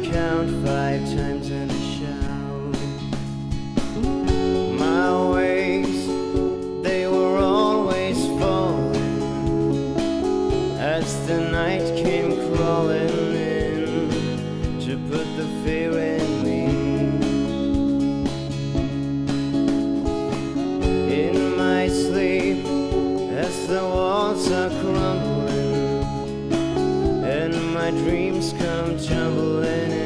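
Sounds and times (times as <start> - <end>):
lead electric guitar bending notes: 0.0 - 30.0
rhythm guitars and drums: 0.0 - 30.0.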